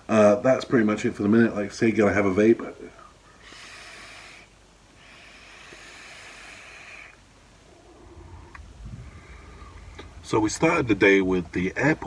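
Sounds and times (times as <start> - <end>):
airy hiss of vaping: 3.4 - 7.2
low rumble: 7.6 - 11.8.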